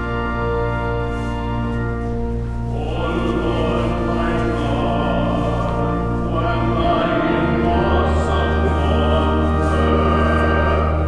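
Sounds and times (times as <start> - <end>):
low bass notes: 0.0 - 11.0
choir singing held notes: 2.7 - 11.0.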